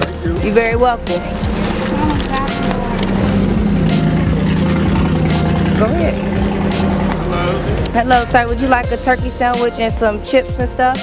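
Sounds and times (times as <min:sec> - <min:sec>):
vehicle engine humming: 0:00.0 - 0:11.0
indistinct voices: 0:00.5 - 0:10.4.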